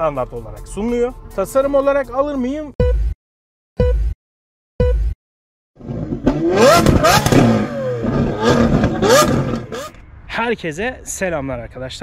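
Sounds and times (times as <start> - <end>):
countdown beep: 2.8 - 3.2, 3.8 - 4.2, 4.8 - 5.2.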